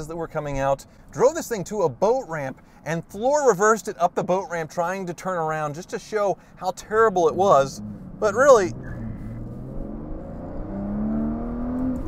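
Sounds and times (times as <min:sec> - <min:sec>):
car engine accelerating hard: 0:07.3 - 0:12.0.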